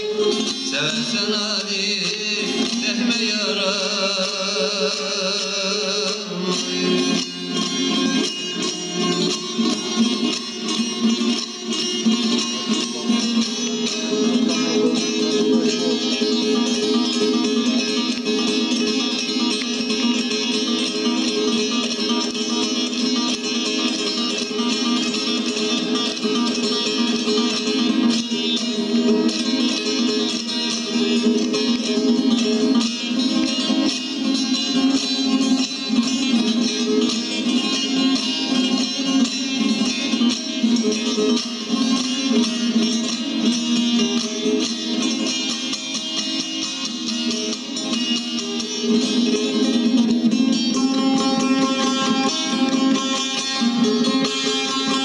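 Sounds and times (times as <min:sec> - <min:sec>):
plucked lute playing: 0:00.0 - 0:55.0.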